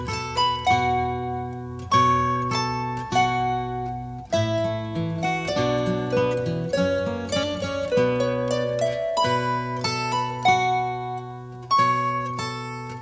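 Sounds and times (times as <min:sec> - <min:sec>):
folk tune on plucked strings: 0:00.0 - 0:13.0.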